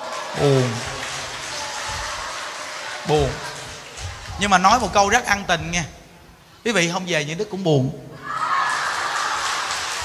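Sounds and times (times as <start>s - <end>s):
hall and audience noise: 0.0s - 10.0s.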